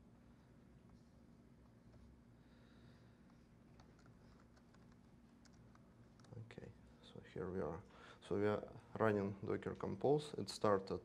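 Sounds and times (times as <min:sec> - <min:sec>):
steady low hum: 0:00.0 - 0:11.0
laptop keyboard typing: 0:03.7 - 0:06.3.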